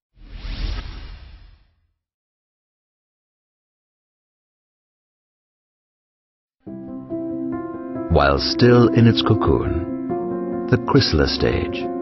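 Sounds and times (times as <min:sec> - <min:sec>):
whoosh with deep rumble: 0:00.2 - 0:01.8.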